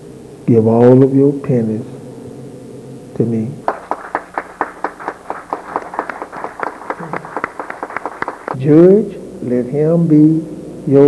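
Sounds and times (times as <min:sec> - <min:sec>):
rapid hand claps: 0:03.6 - 0:08.6.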